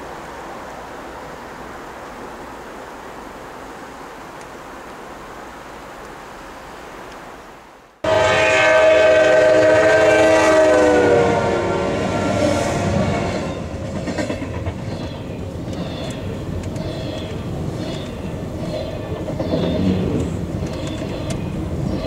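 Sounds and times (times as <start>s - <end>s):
locomotive air horn: 8.0s - 13.7s.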